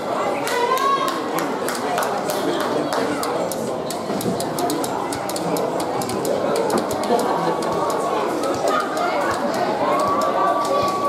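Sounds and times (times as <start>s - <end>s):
overlapping chatter of voices: 0.0s - 11.0s
sharp clicks: 3.2s - 11.0s.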